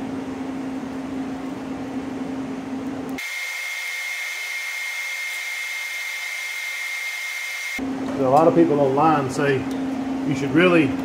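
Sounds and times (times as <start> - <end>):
welding arc hissing and whining: 3.2 - 7.8.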